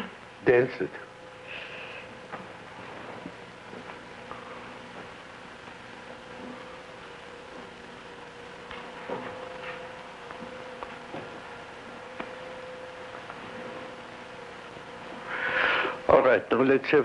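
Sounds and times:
constant low hum: 0.0s - 17.0s
film soundtrack hiss: 0.0s - 17.0s
faint clicks and rustles: 2.1s - 15.3s
breathy rush: 15.2s - 16.1s.

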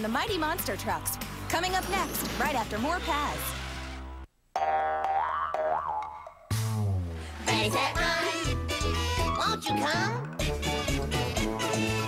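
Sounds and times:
cartoon boing twang: 4.6s - 6.7s.

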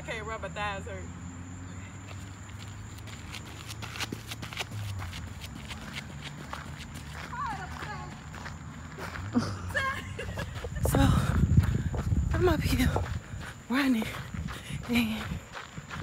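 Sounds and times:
footsteps on gravel: 2.1s - 16.0s.

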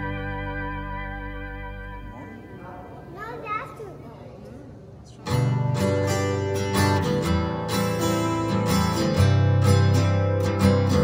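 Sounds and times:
children chattering: 2.2s - 5.2s.

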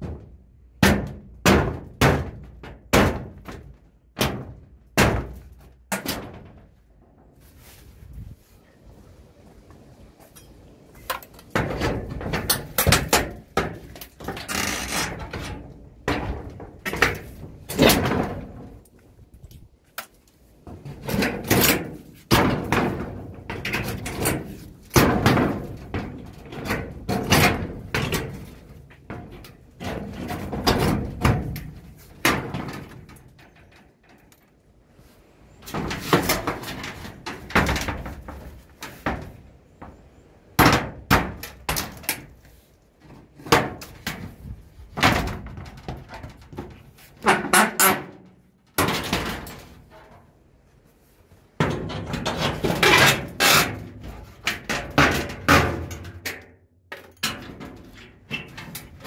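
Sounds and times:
crowbar prying at metal sheet: 0.0s - 6.6s, 11.1s - 18.8s, 45.0s - 49.8s
metal sheet banging and rattling: 0.0s - 7.7s, 10.4s - 19.4s, 20.6s - 34.4s, 35.6s - 42.4s, 43.0s - 50.4s, 51.6s - 59.0s.

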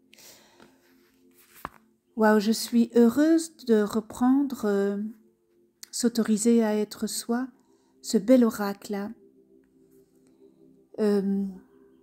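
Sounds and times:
soft breath: 0.0s - 1.6s, 7.6s - 8.0s
faint background music: 0.0s - 12.0s.

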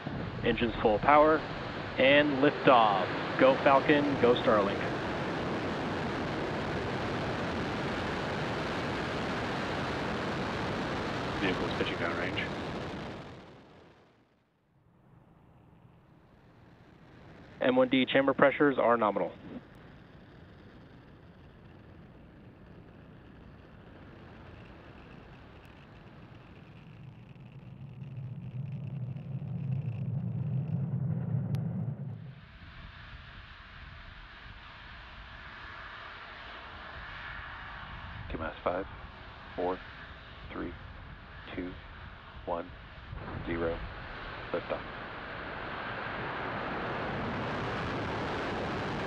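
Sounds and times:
steady hiss: 0.0s - 13.2s, 15.7s - 30.3s, 32.4s - 49.0s
rocket launch rumble: 0.0s - 14.3s, 15.3s - 49.0s.

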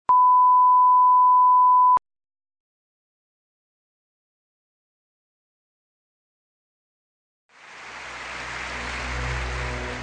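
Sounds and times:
electronic test tone beep: 0.1s - 2.0s.

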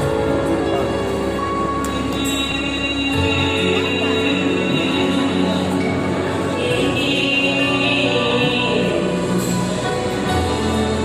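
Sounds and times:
person singing through microphone: 0.0s - 11.0s.

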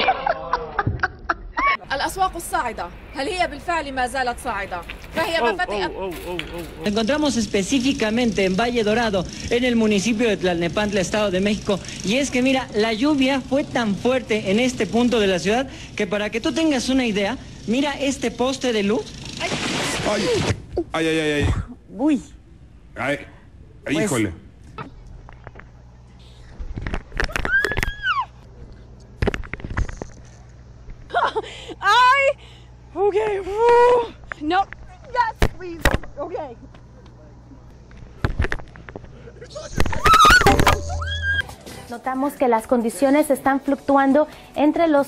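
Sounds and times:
startled cries: 27.2s - 28.4s, 39.5s - 41.5s.

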